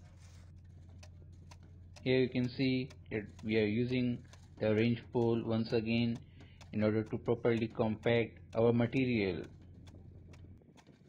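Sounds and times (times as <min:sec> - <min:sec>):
faint clicks: 0:00.0 - 0:11.0
steady low hum: 0:00.0 - 0:11.0.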